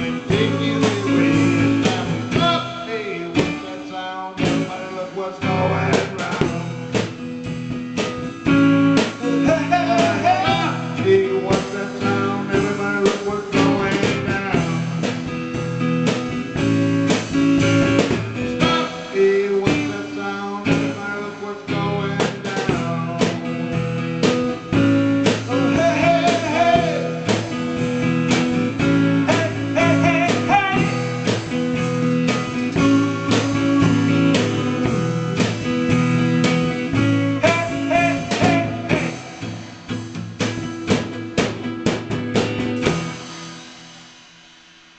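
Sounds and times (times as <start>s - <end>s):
electric guitar: 0.0s - 44.2s
live rock band: 0.0s - 44.9s.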